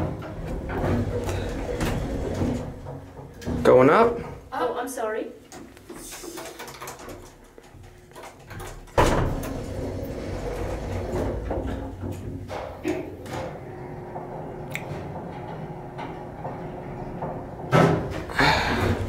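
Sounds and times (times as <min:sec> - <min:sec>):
elevator low hum and ride noise: 0:00.0 - 0:03.6, 0:09.0 - 0:19.0
elevator starting clunk: 0:00.0 - 0:03.8, 0:09.0 - 0:19.0.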